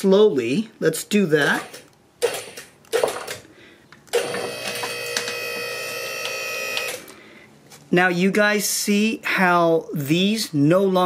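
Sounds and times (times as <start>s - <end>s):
hydraulic pump motor whine: 4.2s - 7.0s.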